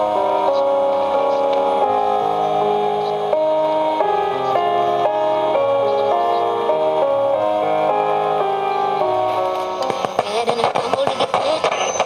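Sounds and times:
instrumental music from radio speaker: 8.9s - 12.0s.

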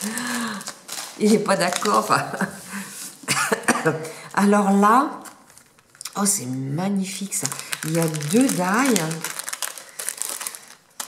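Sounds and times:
plastic packet crinkling: 0.0s - 2.6s, 4.6s - 11.0s.

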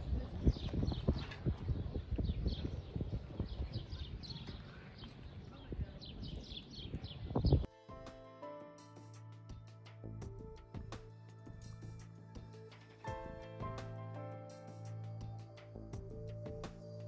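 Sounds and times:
music: 7.6s - 17.0s.

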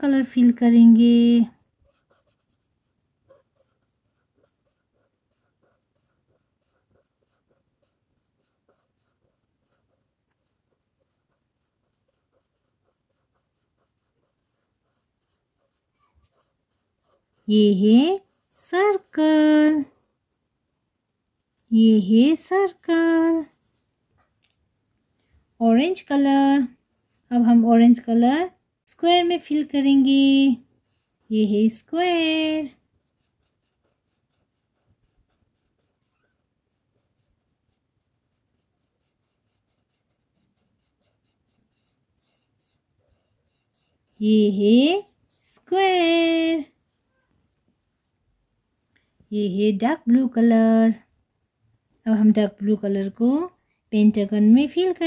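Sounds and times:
pen scratching on paper: 1.1s - 19.8s, 21.5s - 23.9s, 30.8s - 47.3s.

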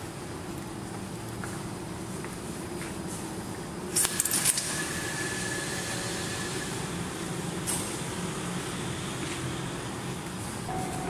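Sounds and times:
train rumble: 6.7s - 11.0s
thin steady tone: 10.7s - 11.0s.

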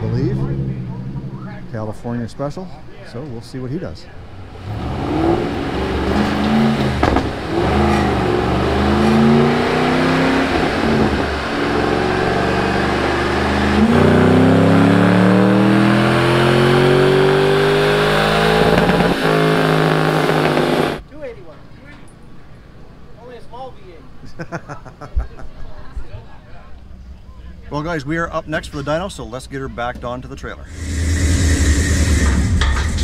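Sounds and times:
car engine revving on dyno: 4.4s - 21.0s, 30.7s - 33.0s.

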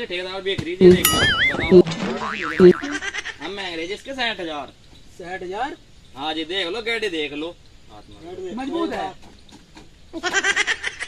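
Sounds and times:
short low blips: 0.8s - 3.0s
cartoon boing sound effect: 0.8s - 3.2s.

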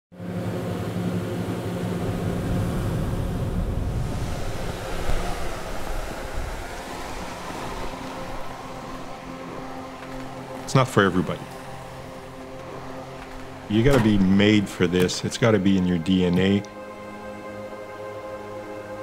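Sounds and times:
low hum: 0.1s - 19.0s
snowmaking gun spraying: 3.9s - 16.0s.

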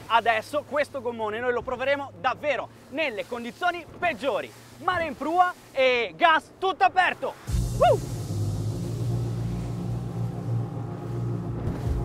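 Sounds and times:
water and spray hissing: 0.0s - 12.0s
outboard motor running at full throttle: 7.5s - 12.0s.

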